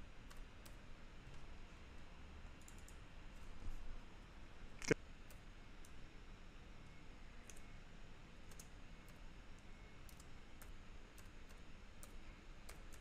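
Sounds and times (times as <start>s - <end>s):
low steady hiss: 0.0s - 13.0s
keystrokes on computer keyboard: 0.2s - 1.4s, 2.6s - 3.6s, 7.4s - 7.7s, 8.4s - 9.2s, 10.0s - 13.0s.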